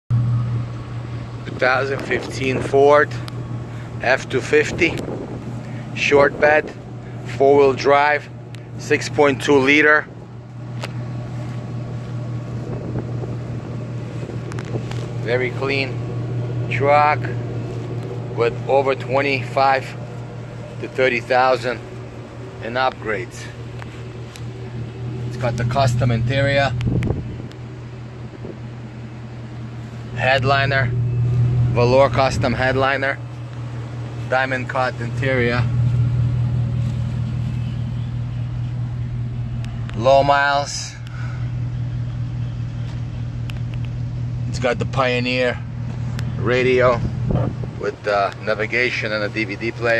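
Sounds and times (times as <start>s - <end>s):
low engine drone: 0.0s - 49.9s.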